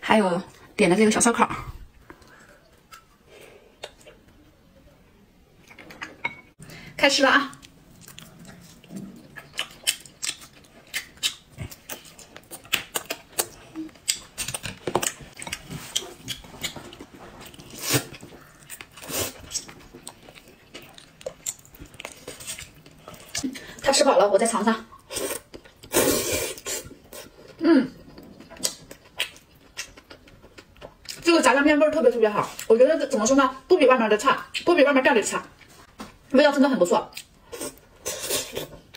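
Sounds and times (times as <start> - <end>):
chewing clicks and smacks: 7.5 - 16.8
person slurping noodles: 25.1 - 26.9.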